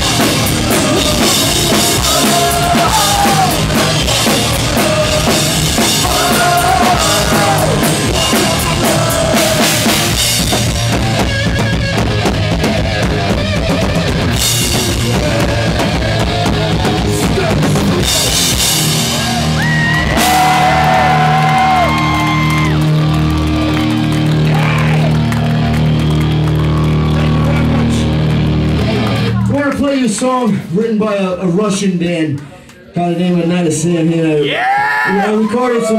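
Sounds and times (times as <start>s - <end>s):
man singing: 0.0s - 10.3s, 14.6s - 18.6s
electric guitar: 0.0s - 29.6s
drum kit: 0.0s - 30.6s
bass guitar: 0.0s - 31.8s.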